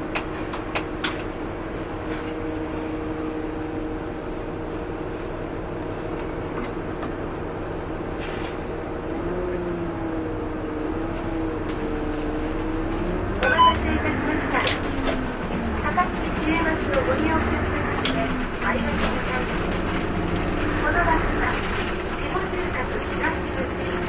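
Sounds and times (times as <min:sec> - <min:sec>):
bus engine drone: 0:00.0 - 0:24.0.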